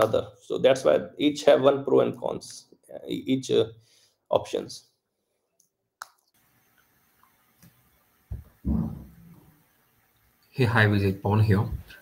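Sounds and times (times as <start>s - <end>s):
faint microphone hiss: 6.3s - 12.0s.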